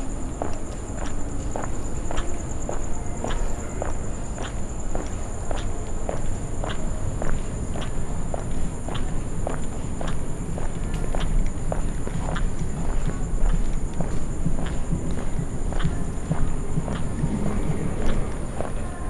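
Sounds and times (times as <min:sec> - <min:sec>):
footsteps on stone paving: 0:00.0 - 0:19.0.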